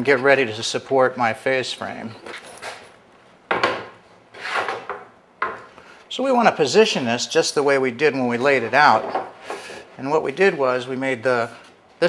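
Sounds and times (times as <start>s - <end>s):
wood scraping against wood: 4.3s - 5.0s.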